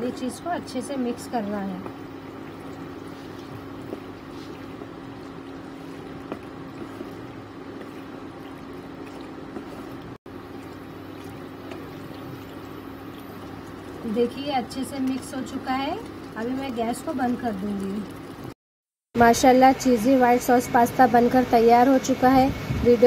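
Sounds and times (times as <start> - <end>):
steady low hum: 0.0 - 18.5
spatula stirring thick sauce: 1.1 - 17.2.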